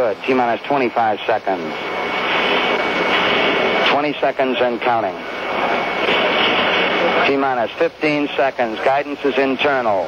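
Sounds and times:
radio channel hiss: 0.0s - 10.0s.

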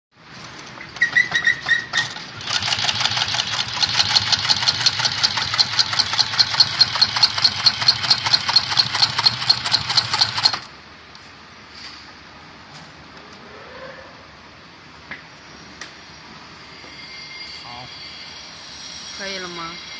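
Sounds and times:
sewing machine clattering: 1.0s - 10.7s.

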